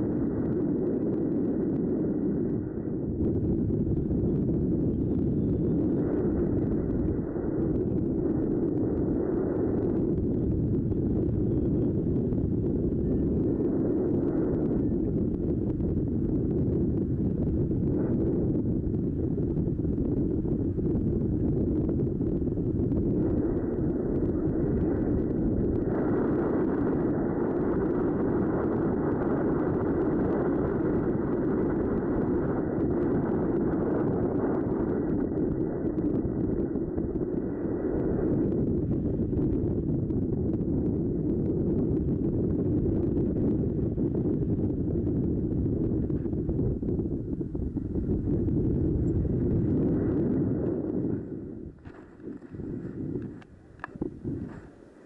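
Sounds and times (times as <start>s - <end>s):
wind on microphone: 0.0s - 55.0s.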